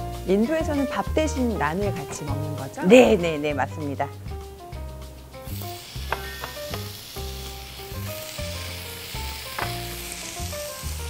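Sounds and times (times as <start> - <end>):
soft background music: 0.0 - 11.0
beef sizzling in frying pan: 4.3 - 11.0.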